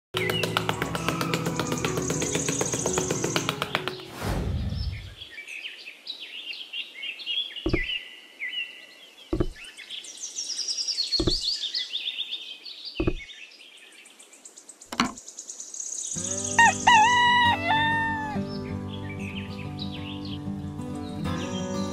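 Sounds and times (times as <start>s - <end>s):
music: 0.2s - 4.2s, 16.2s - 21.9s
birdsong chirping: 0.2s - 21.9s
falling whoosh: 4.1s - 5.2s
sharp knocks: 7.7s - 7.9s, 9.3s - 9.6s, 11.2s - 11.5s, 13.0s - 13.3s.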